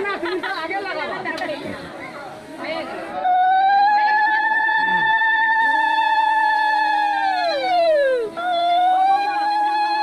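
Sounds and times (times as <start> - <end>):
group of people chattering: 0.0 - 10.0.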